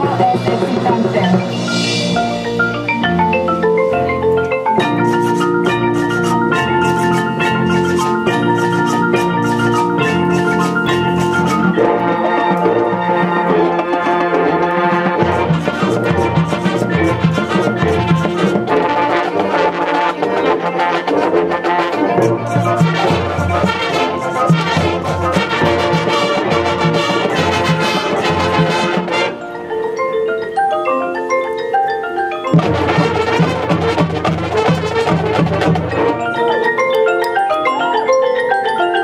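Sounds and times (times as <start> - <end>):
marching band playing: 0.0 - 30.7, 32.2 - 39.0
marimbas: 0.0 - 39.0
brass: 4.8 - 29.7, 32.5 - 36.8.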